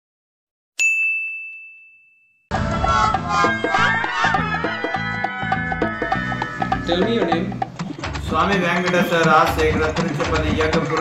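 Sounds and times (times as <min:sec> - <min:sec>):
bell-like ding: 0:00.8 - 0:02.5.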